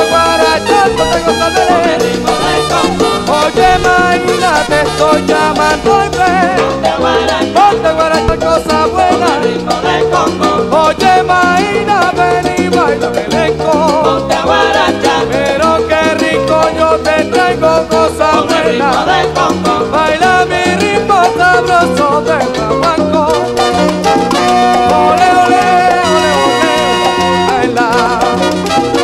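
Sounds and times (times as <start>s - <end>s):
salsa orchestra recording: 0.0s - 29.0s.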